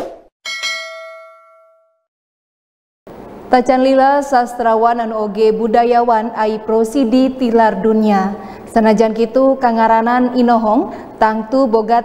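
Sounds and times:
bright bell ding: 0.4s - 2.0s.

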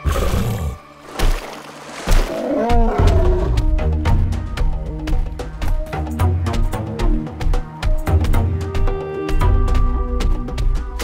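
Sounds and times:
animal growl: 2.3s - 3.8s.

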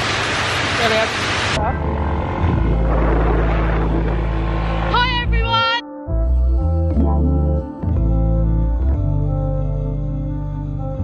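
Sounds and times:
road noise: 0.0s - 5.8s
wind: 0.0s - 5.8s.

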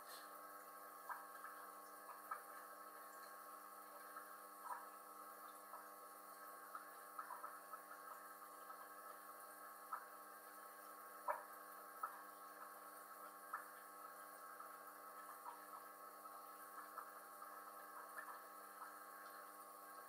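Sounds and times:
aquarium filter humming: 0.0s - 20.0s.

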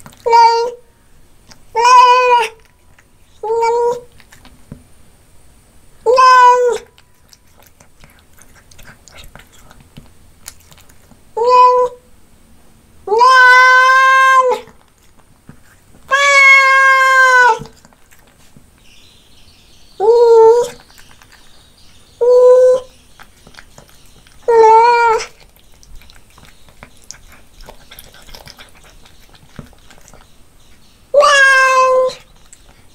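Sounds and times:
cat chewing: 0.0s - 0.7s, 2.4s - 4.9s, 6.8s - 11.4s, 14.6s - 19.0s, 20.6s - 22.2s, 22.8s - 32.9s
cat meowing: 0.1s - 0.8s, 1.7s - 2.7s, 3.4s - 4.1s, 6.1s - 6.9s, 11.4s - 12.0s, 13.1s - 14.8s, 16.1s - 17.8s, 20.0s - 20.8s, 22.2s - 22.9s, 24.4s - 25.4s, 31.1s - 32.3s.

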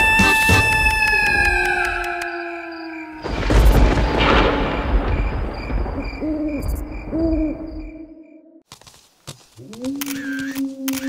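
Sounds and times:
cartoon owl hooting: 0.0s - 3.2s, 6.2s - 8.6s
low rumble: 3.2s - 8.2s.

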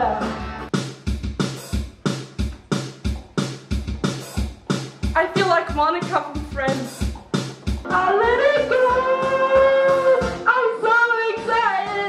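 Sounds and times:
backing track with steady beat: 0.0s - 12.0s
woman singing karaoke: 7.9s - 12.0s.

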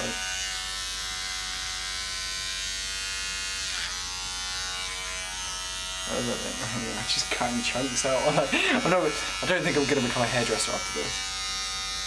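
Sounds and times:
electric beard trimmer buzzing: 0.0s - 12.0s.

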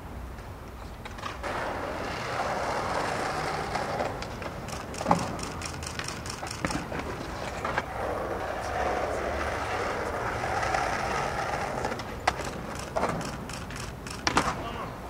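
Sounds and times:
skateboard wheels rolling on asphalt: 0.0s - 14.8s
skateboard clacking: 1.0s - 14.9s
passing traffic: 1.4s - 14.6s.

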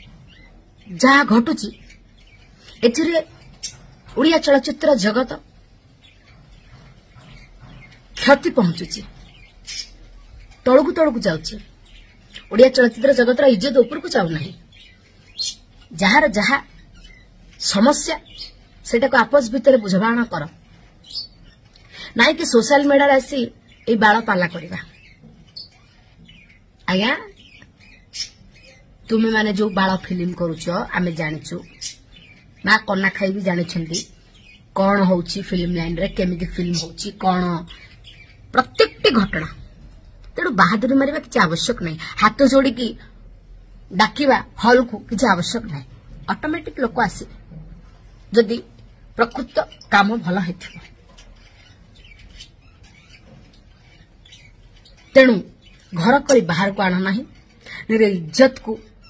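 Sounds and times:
faint high bird chirps: 0.0s - 59.0s.

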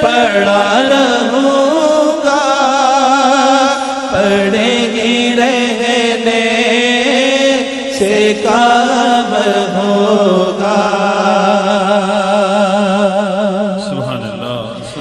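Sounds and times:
man singing devotional song: 0.0s - 15.0s.

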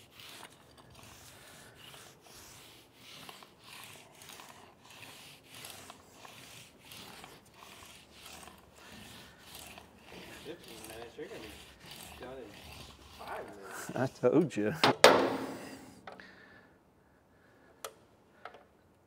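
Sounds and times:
paint roller swishing on metal: 0.0s - 15.8s.

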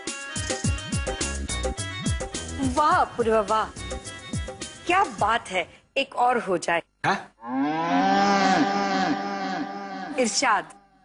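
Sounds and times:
long wavering vocal sound: 7.9s - 10.2s.

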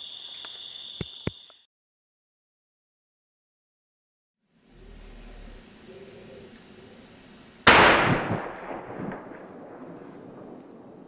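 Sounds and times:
loud gunshot with echo: 7.7s - 9.4s.

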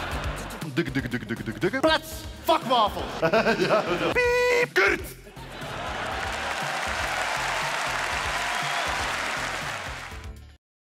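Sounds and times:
music with bass line: 0.0s - 2.5s
audience applause: 5.6s - 10.3s.

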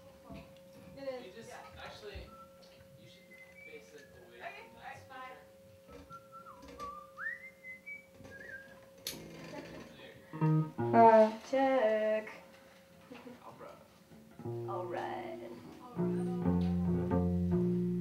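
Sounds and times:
faint wavering whistle: 2.3s - 4.3s, 5.9s - 8.9s
bass guitar notes: 10.3s - 11.3s, 14.4s - 18.0s.

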